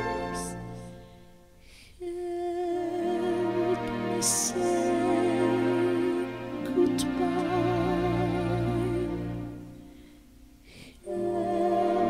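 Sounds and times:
soprano voice singing with vibrato: 0.0 - 0.9, 2.0 - 10.0, 10.9 - 12.0
soft orchestral accompaniment: 0.0 - 12.0.

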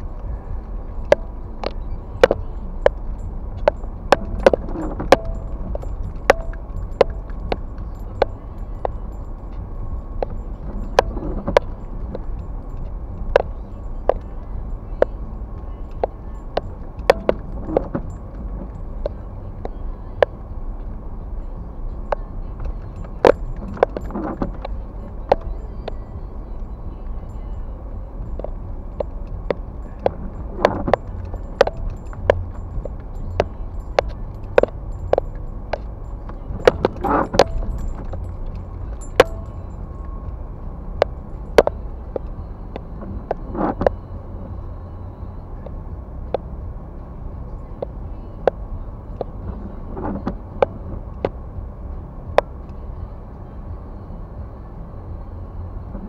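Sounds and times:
engine and road rumble: 0.0 - 56.0.

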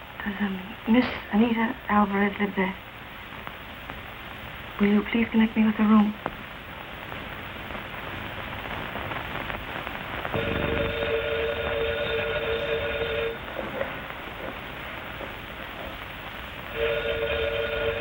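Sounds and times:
steady rumble: 0.0 - 18.0
steam whistle blast: 16.7 - 18.0.

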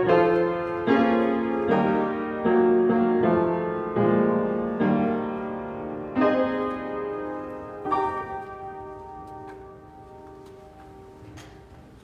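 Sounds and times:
piano chord ringing: 0.0 - 11.7.

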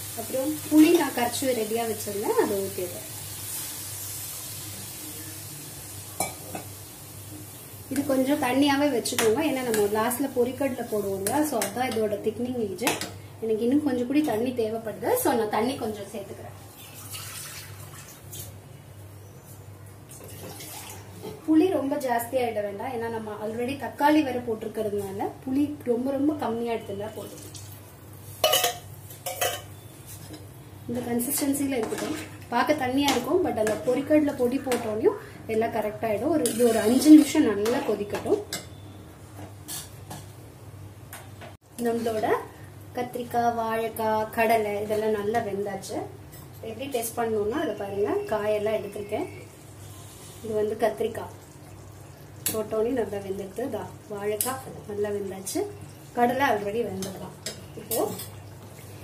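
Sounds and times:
liquid sizzling in hot pan: 0.0 - 12.2, 27.2 - 30.2, 36.4 - 38.0, 49.3 - 59.0
metal ladle clanking on pan: 28.4 - 29.8.

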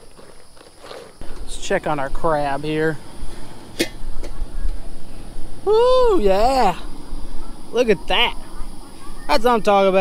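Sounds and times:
low steady rumble: 1.2 - 9.0.

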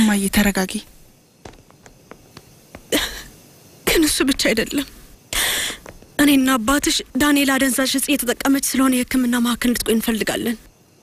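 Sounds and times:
woman's breathy vocal burst: 5.3 - 5.8.

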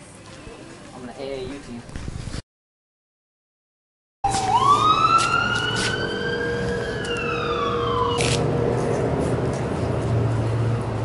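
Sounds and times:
emergency vehicle siren wailing: 4.2 - 8.8
traffic noise: 4.2 - 11.0.

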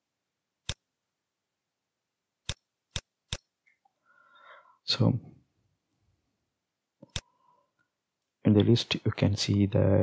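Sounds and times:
computer mouse clicks: 7.0 - 7.3.

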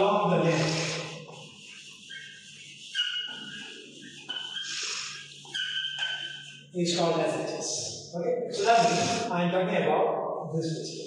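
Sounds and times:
chalk scratching on chalkboard: 0.0 - 9.3.

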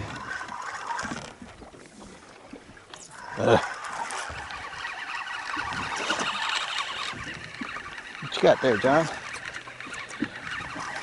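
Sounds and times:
fishing reel whirring: 0.0 - 1.4, 2.8 - 11.0.

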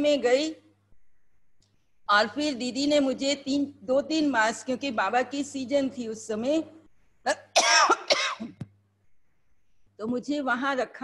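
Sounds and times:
woman clearing her throat: 7.3 - 8.6
woman coughing: 7.3 - 8.6.

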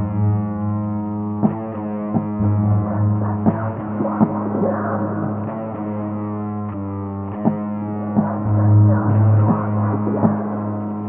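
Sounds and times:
distorted electric guitar droning: 0.0 - 11.0.

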